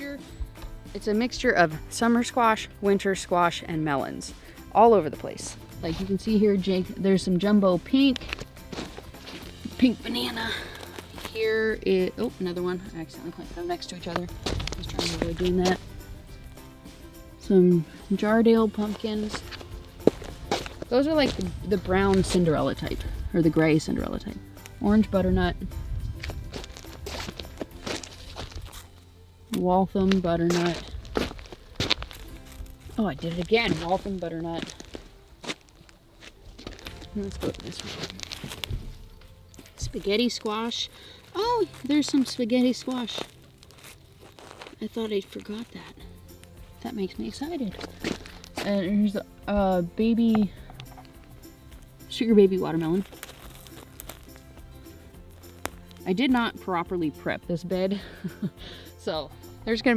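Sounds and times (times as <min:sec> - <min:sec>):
soft background music: 0:00.0 - 0:59.9
rustling of soil and fabric: 0:04.0 - 0:16.7, 0:17.4 - 0:59.9
footsteps walking: 0:07.8 - 0:12.5, 0:13.2 - 0:23.2, 0:26.0 - 0:29.1, 0:30.0 - 0:48.9, 0:50.2 - 0:56.5.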